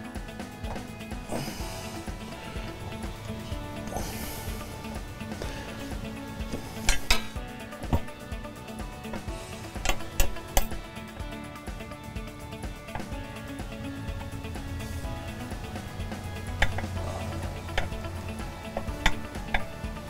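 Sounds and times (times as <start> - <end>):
background music: 0.0 - 20.0.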